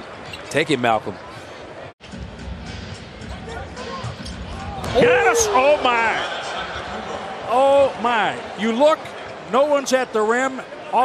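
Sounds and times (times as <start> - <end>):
arena crowd noise: 3.0 - 11.0.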